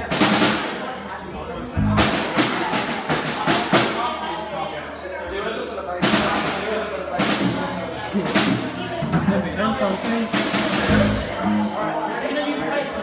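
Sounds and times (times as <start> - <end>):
people talking: 0.0 - 13.0
bass drum thumps: 1.6 - 2.3, 10.8 - 11.7
low bass notes: 1.6 - 2.3, 10.8 - 11.9.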